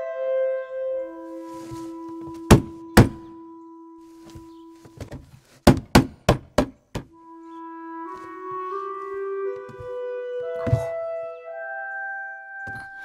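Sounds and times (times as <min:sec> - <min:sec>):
wooden window thudding: 0:02.2 - 0:03.3, 0:05.0 - 0:07.2
held note of background music: 0:07.1 - 0:13.0.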